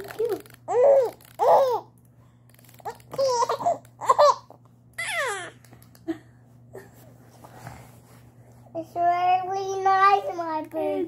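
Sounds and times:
baby laughing and babbling: 0.0 - 1.9, 3.0 - 5.6.

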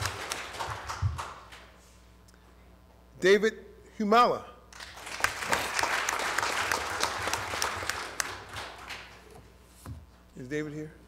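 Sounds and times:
audience applauding: 0.0 - 1.7, 4.8 - 9.3.

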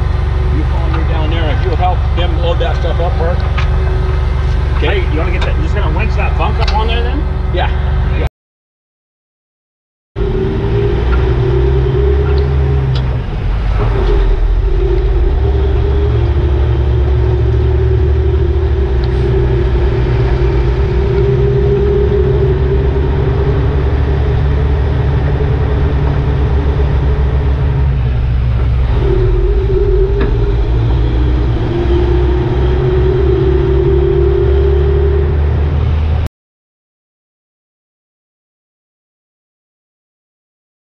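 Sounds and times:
droning tone: 0.0 - 8.3, 10.2 - 36.3
truck engine and tyres rumbling: 0.0 - 8.3, 10.2 - 36.3.

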